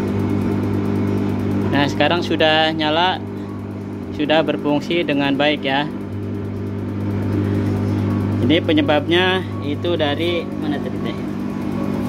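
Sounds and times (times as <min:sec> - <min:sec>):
clothes dryer drum humming: 0:00.0 - 0:12.0.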